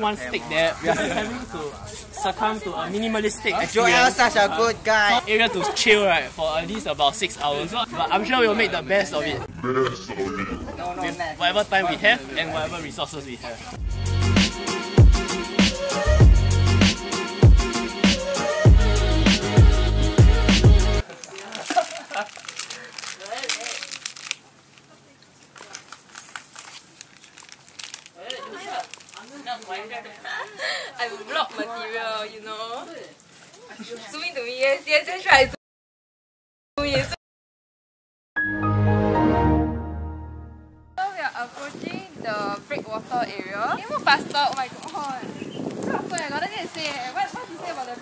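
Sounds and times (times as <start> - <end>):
plastic wrapper crinkling: 21.0 - 30.0, 44.2 - 47.1.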